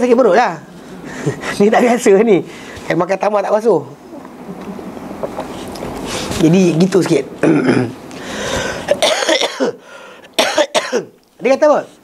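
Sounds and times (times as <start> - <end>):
man coughing: 7.4 - 8.0, 8.9 - 11.2.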